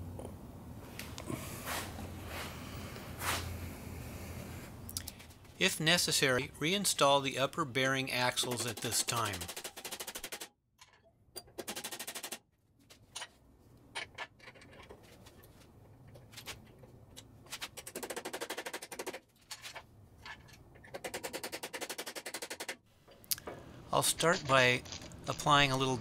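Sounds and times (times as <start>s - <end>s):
rapid metallic clicks: 8.2s - 10.5s, 11.4s - 12.4s, 17.6s - 19.2s, 20.8s - 22.8s.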